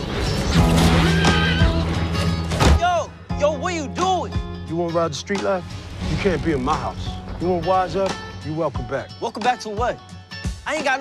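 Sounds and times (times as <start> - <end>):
loud dramatic music: 0.0 - 8.6
horse whinnying: 0.8 - 2.2.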